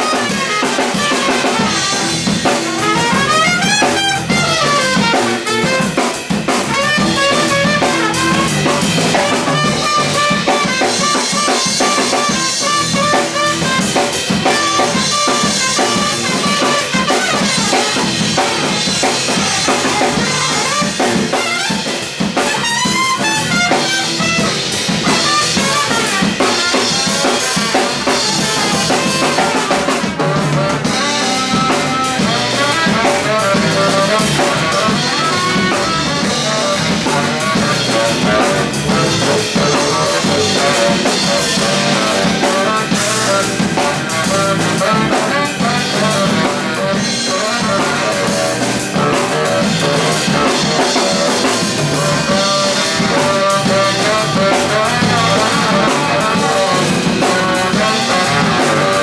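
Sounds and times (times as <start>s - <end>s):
drum kit groove: 0.0s - 59.0s
funk jazz band playing: 0.0s - 59.0s.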